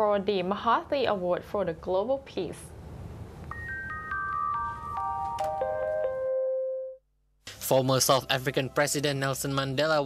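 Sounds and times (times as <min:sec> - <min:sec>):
bell-like chime notes: 0:03.5 - 0:07.0.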